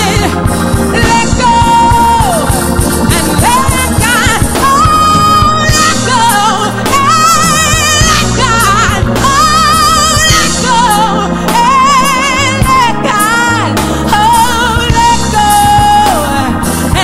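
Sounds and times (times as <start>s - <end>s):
keyboard and band accompaniment: 0.0s - 17.0s
woman singing gospel: 0.0s - 17.0s.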